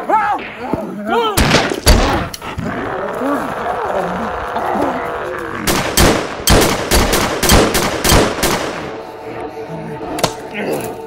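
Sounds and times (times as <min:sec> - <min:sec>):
rapid gunshots: 0:05.7 - 0:09.0.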